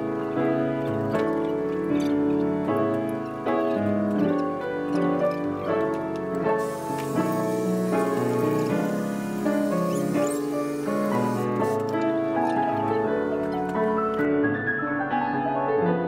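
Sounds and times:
piano music: 0.0s - 16.0s
faint vacuum hiss: 6.6s - 13.9s.

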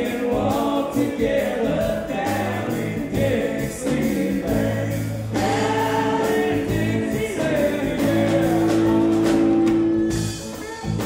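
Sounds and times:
voices singing together: 0.0s - 10.1s
drums: 0.0s - 11.0s
electric guitars: 0.0s - 11.0s.

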